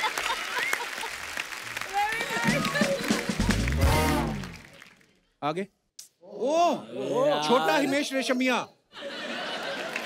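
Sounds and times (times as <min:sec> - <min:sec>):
audience applauding: 0:00.0 - 0:05.2, 0:09.4 - 0:10.0.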